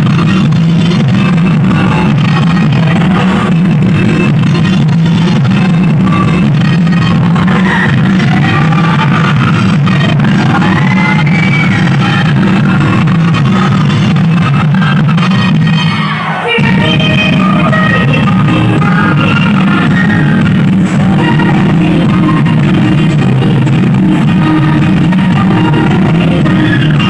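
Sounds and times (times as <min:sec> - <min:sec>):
dance song over sound system: 0:00.0 - 0:27.0.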